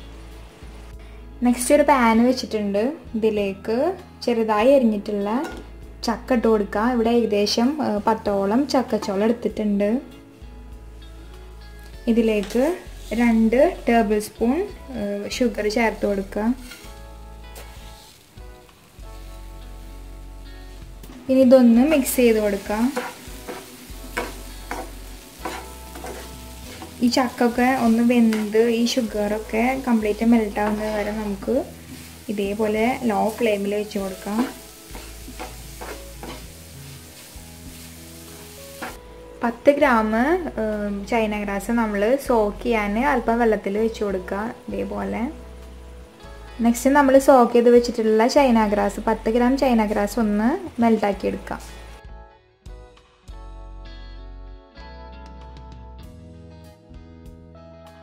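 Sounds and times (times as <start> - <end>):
fruit sizzling in a frying pan: 0.0 - 3.1, 4.0 - 52.0
quiet background music: 0.0 - 58.0
wooden spatula scraping a pan: 12.4 - 13.5, 16.5 - 18.2, 22.0 - 39.0.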